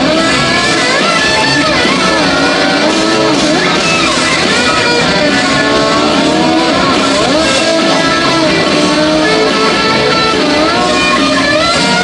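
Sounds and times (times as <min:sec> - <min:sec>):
distorted electric guitar: 0:00.0 - 0:12.0
rock band playing: 0:00.0 - 0:12.0.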